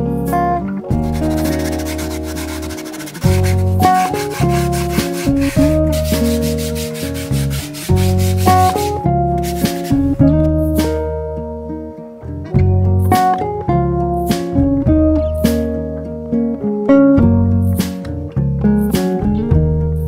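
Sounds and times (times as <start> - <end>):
acoustic guitar music: 0.0 - 20.0
sanding block rubbing wood: 1.0 - 10.2.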